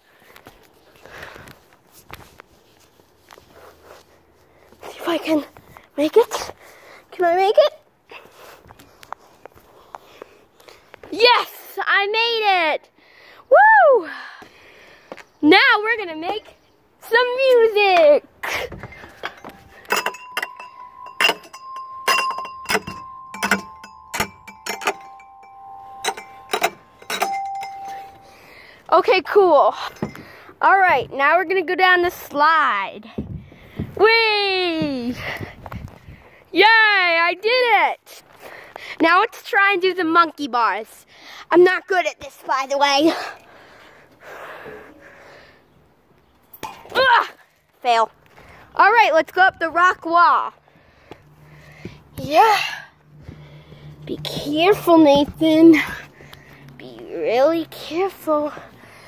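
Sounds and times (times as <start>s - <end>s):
child breathing heavily: 6.4s - 7.2s, 28.0s - 28.9s, 50.6s - 52.2s, 52.8s - 54.1s, 55.8s - 56.8s, 58.3s - 59.0s
metal chime bars ringing: 19.0s - 28.6s.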